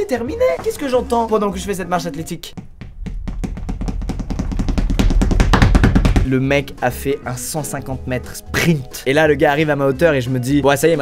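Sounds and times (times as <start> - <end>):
fast drum roll: 2.6 - 6.4.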